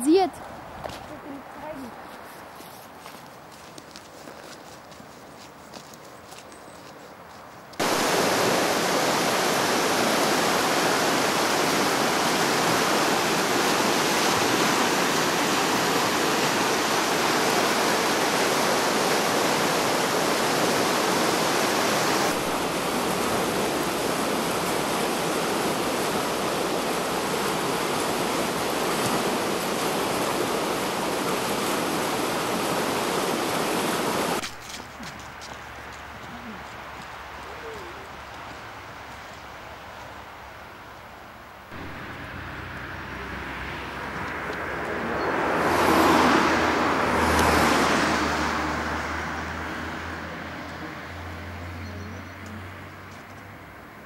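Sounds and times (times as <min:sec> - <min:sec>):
stream rushing over rocks: 0:07.8 - 0:34.6, 0:41.6 - 0:51.7.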